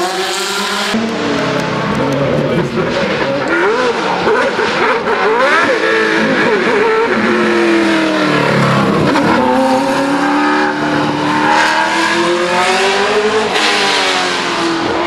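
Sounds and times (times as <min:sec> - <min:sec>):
race car engine: 0:00.0 - 0:15.0.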